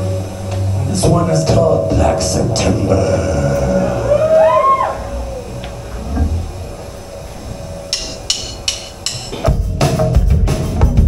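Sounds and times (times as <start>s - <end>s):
rock band playing: 7.0s - 11.0s.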